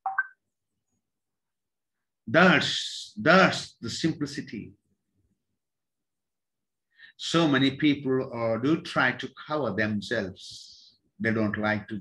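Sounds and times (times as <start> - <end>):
high-pitched blip: 0.0 - 0.4.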